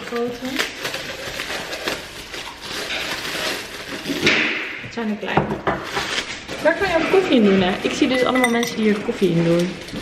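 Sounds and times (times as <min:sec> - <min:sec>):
wrapping paper crinkling: 0:00.0 - 0:04.3, 0:05.8 - 0:10.0.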